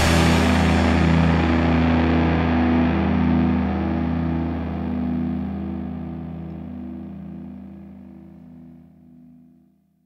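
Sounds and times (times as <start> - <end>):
background guitar music: 0.0 - 9.5.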